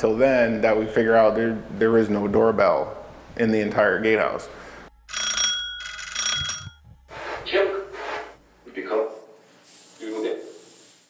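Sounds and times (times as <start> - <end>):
doorbell chime: 5.1 - 6.8.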